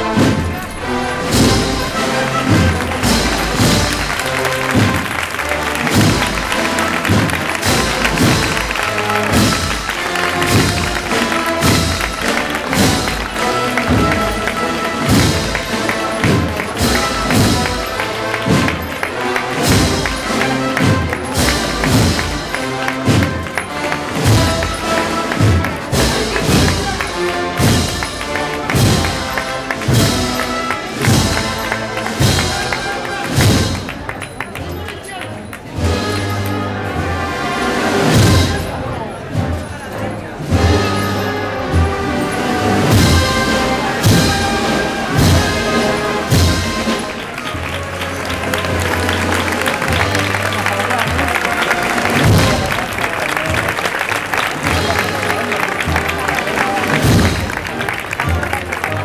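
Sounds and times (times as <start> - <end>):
drum strokes: 0.0 - 34.4, 37.8 - 39.7, 40.4 - 58.4
wind band playing march: 0.0 - 59.0.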